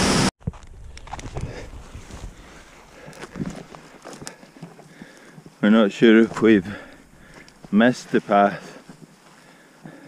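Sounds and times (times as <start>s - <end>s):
footsteps through heather and grass: 0.4s - 10.0s
twigs brushing and clicking: 0.5s - 9.2s.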